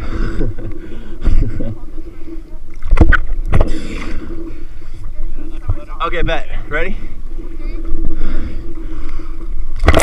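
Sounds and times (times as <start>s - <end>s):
sea water sloshing: 0.0s - 10.0s.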